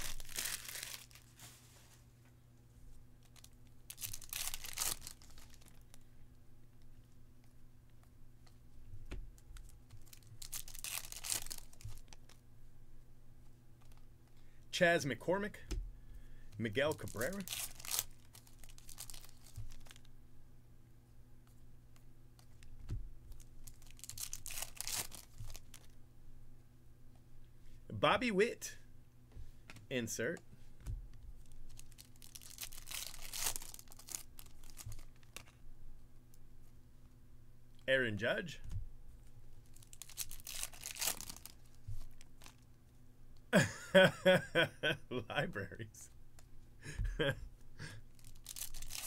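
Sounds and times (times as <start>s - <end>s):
plastic wrapper tearing and crinkling: 0.0s - 1.4s, 3.2s - 6.0s, 9.6s - 12.4s, 16.8s - 20.1s, 23.3s - 26.0s, 31.4s - 35.6s, 39.6s - 42.6s, 48.1s - 49.0s
cards rustling against cards: 0.0s - 2.0s, 3.2s - 6.0s, 9.4s - 12.4s, 16.5s - 20.1s, 22.4s - 26.0s, 29.6s - 35.6s, 39.6s - 42.7s, 48.1s - 49.0s.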